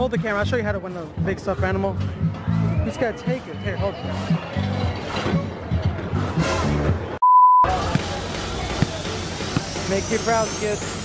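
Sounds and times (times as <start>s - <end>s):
background music: 0.0s - 11.0s
busy fairground noise: 0.0s - 11.0s.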